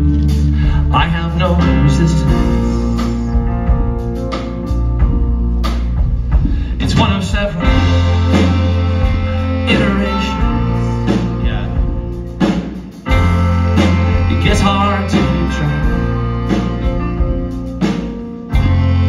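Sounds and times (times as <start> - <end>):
live band playing: 0.0 - 19.0
drum hits: 2.3 - 19.0.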